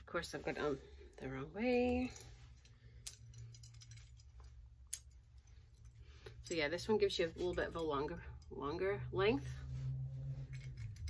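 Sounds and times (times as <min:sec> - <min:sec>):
beaded necklace being handled: 0:00.4 - 0:08.1, 0:09.8 - 0:11.0.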